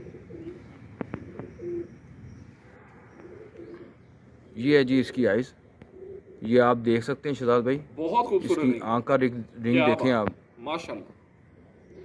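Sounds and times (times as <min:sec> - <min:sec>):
pigeons cooing: 0:00.0 - 0:04.6, 0:05.6 - 0:06.6, 0:11.5 - 0:12.0.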